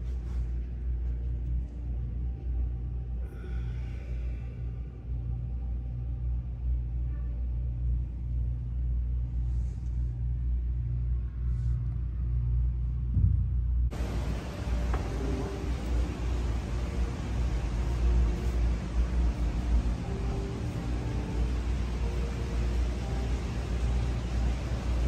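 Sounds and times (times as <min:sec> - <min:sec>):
low rumbling hum: 0:00.0 - 0:25.0.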